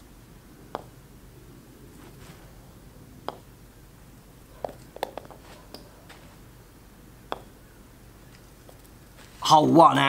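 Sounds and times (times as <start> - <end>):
putter striking golf ball: 0.7 - 1.0, 3.2 - 3.6, 4.6 - 5.9, 7.2 - 8.9.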